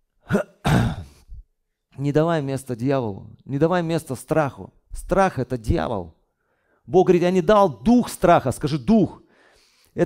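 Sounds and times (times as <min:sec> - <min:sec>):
man clearing his throat: 0:00.2 - 0:01.4.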